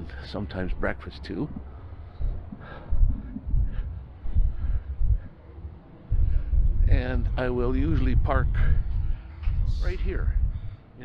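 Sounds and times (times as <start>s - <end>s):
footsteps as dull thuds: 1.4s - 10.8s.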